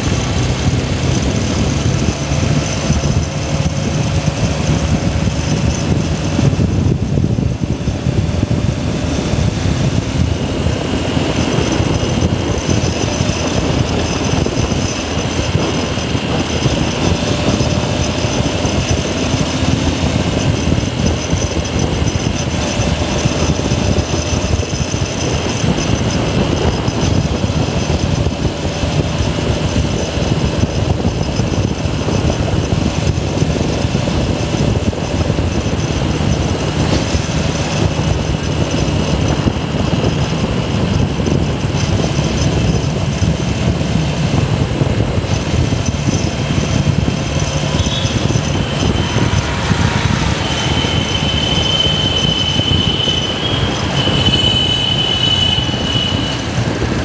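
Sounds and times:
motorcycle engine running: 0.0s - 57.0s
wind noise on microphone: 0.0s - 57.0s.

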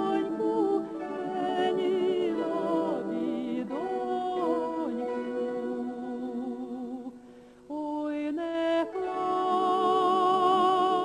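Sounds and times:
woman singing folk song: 0.0s - 11.0s.

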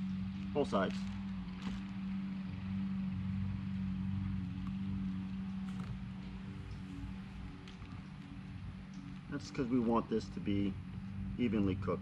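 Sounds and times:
low motor hum: 0.0s - 12.0s.

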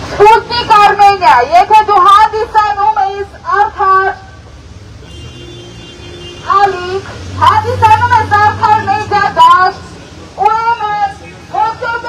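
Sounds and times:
street noise: 0.0s - 12.0s
protesters' raised voices: 6.4s - 12.0s.

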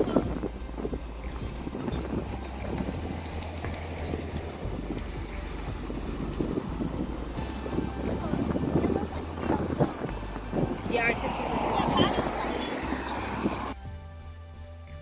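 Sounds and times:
wind buffeting microphone: 0.0s - 13.8s.

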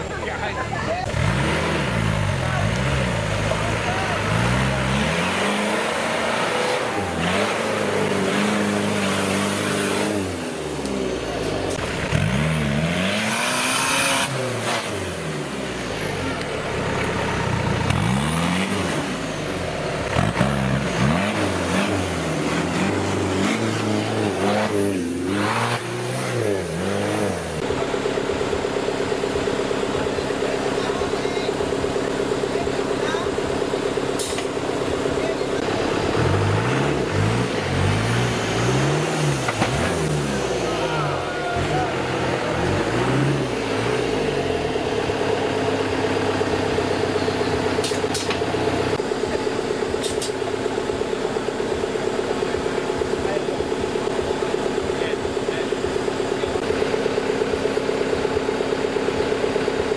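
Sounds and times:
off-road vehicle engine revving: 0.0s - 59.9s.

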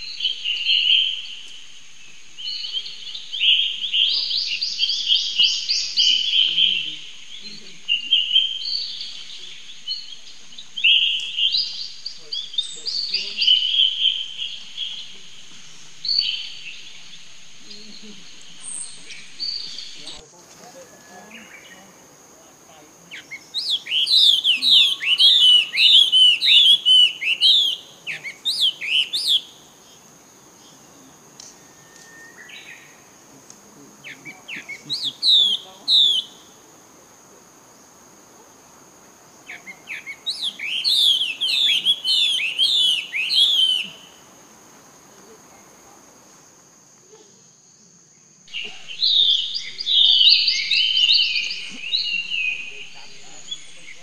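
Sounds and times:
chorus of bird calls: 0.0s - 54.0s
bird whistled chirps: 23.1s - 29.5s, 31.4s - 33.0s, 34.0s - 36.5s, 39.5s - 44.2s, 48.6s - 54.0s.

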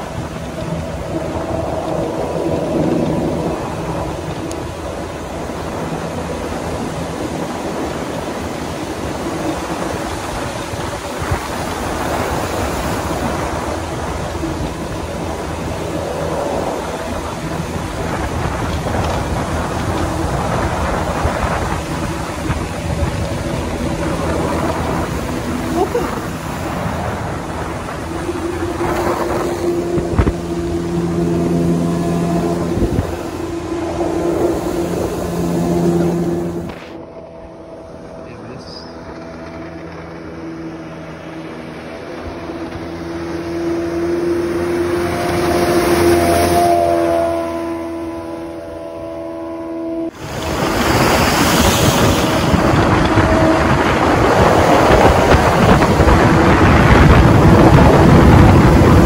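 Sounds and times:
outboard jet motor hum: 0.0s - 59.0s
water rushing along hull: 0.0s - 59.0s.

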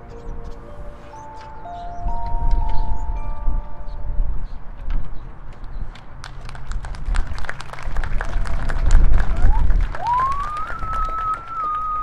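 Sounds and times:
crowd applauding: 6.2s - 12.0s
long steady whistle: 10.0s - 12.0s.

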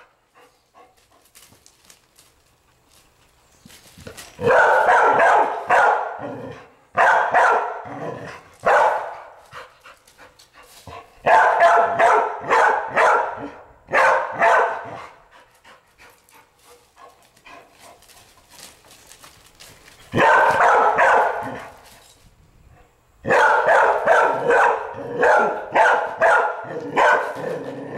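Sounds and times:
dog barking: 4.4s - 7.9s, 8.6s - 9.4s, 11.2s - 15.2s, 20.1s - 21.6s, 23.2s - 27.8s.

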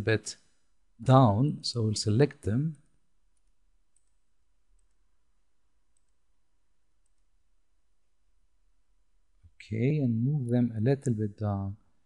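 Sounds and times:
faint computer mouse clicks: 3.4s - 4.2s.

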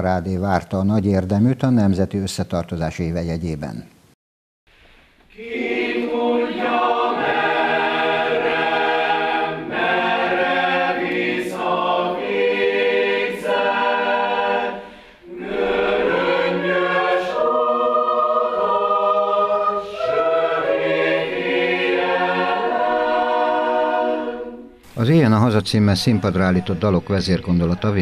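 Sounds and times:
choir singing sustained chords: 5.3s - 24.9s.

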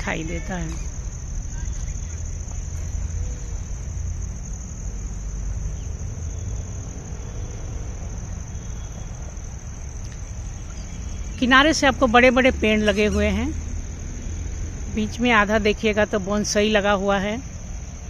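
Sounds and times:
crickets chirping: 0.0s - 18.0s
low outdoor rumble: 0.0s - 18.0s.

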